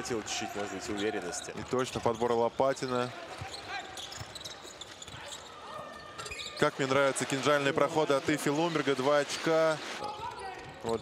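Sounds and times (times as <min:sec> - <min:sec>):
faint arena background: 0:00.0 - 0:11.0.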